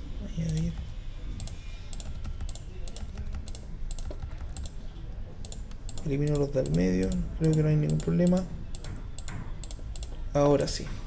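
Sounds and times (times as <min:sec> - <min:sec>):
low steady hum: 0:00.0 - 0:11.0
computer keyboard typing: 0:00.4 - 0:04.8, 0:05.4 - 0:10.2.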